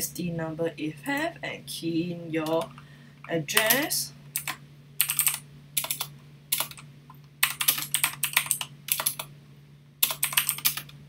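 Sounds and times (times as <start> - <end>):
steady low hum: 0.0 - 11.0
keyboard typing: 3.6 - 6.8, 7.4 - 9.3, 10.0 - 11.0.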